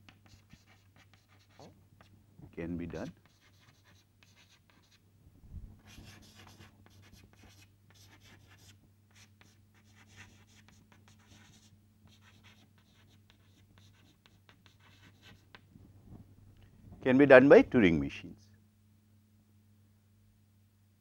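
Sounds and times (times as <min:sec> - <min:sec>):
chalk scratching on blackboard: 0:00.1 - 0:02.1, 0:02.9 - 0:05.0, 0:05.8 - 0:15.6
low steady hum: 0:00.2 - 0:21.0.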